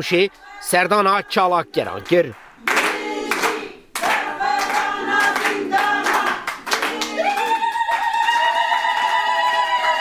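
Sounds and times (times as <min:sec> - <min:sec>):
women singing together: 0:00.3 - 0:01.7, 0:02.6 - 0:10.0
hands clapping in time: 0:02.6 - 0:09.2.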